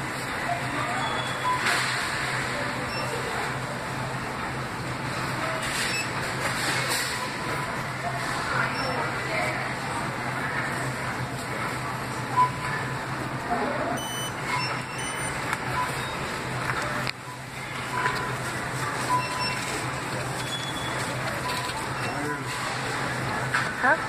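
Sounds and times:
indistinct chatter: 0.0s - 24.0s
electronic checkout beep: 0.4s - 1.9s, 2.8s - 3.4s, 5.8s - 6.2s, 12.3s - 12.9s, 14.0s - 22.5s.

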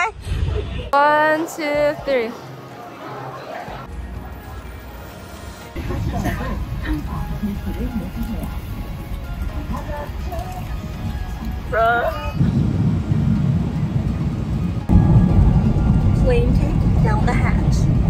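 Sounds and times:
music: 1.0s - 18.0s
airliner cabin rumble: 5.8s - 18.0s.

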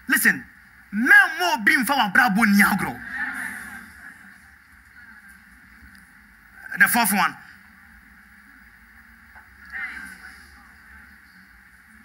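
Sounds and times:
faint room noise: 0.0s - 12.0s
echo of amplified man's voice: 0.1s - 3.1s.

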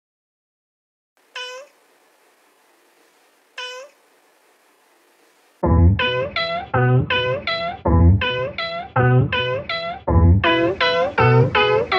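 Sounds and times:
faint background hiss: 1.2s - 11.9s
cat meowing: 1.3s - 1.8s, 3.6s - 4.0s.

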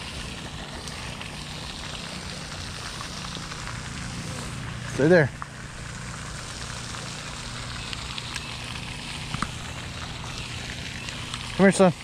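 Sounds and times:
fountain spray splashing on water: 0.0s - 12.0s.

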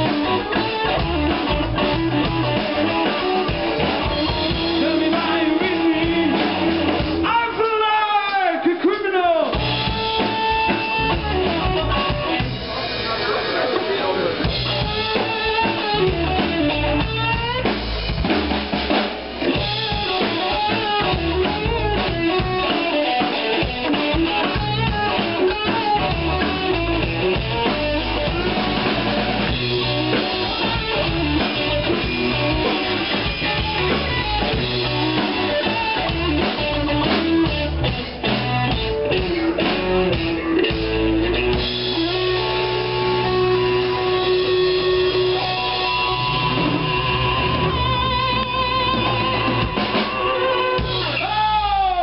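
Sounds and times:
bass guitar: 0.0s - 52.0s
drum kit: 0.0s - 52.0s
electric guitar: 0.0s - 52.0s.

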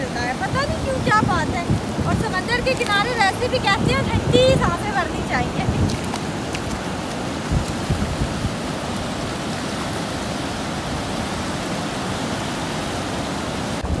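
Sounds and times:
waves breaking: 0.0s - 14.0s
wind buffeting microphone: 0.0s - 14.0s.

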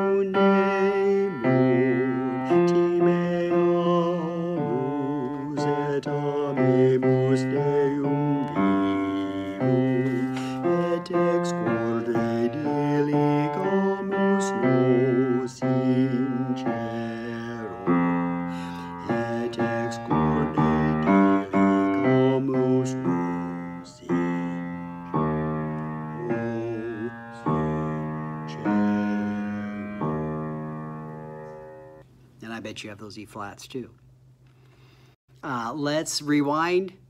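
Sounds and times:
man singing bass line: 0.0s - 31.0s
piano chords: 0.0s - 32.0s.

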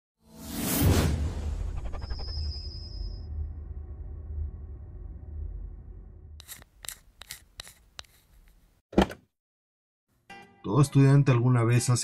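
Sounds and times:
low rumbling intro music: 3.2s - 6.4s
scissors snipping: 6.4s - 8.6s.

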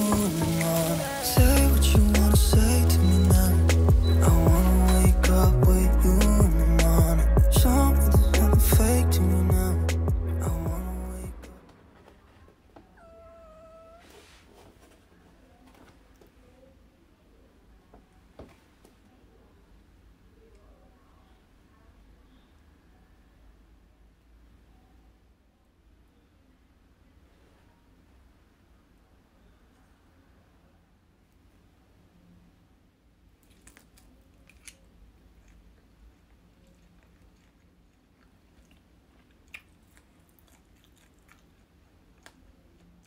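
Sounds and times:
cat meowing: 12.9s - 14.2s
person chewing food: 33.4s - 43.0s.

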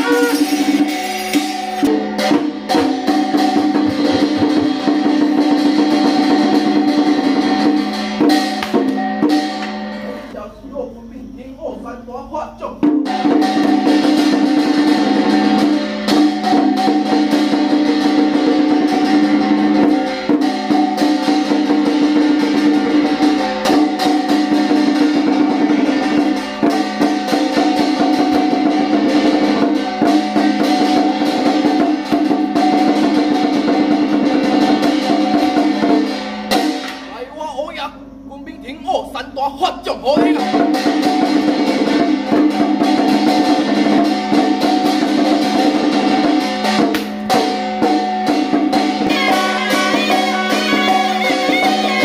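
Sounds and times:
brass gong ringing: 0.0s - 2.4s
drum roll: 0.0s - 10.7s, 12.5s - 52.0s.

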